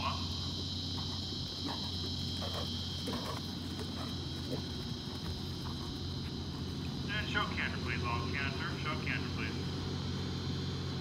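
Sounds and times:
insects trilling: 0.0 - 11.0
low steady hum: 0.0 - 11.0.

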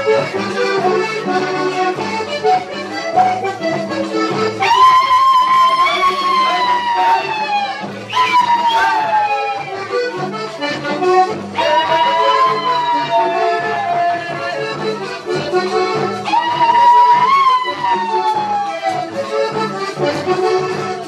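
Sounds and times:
accordion folk dance music: 0.0 - 21.0.

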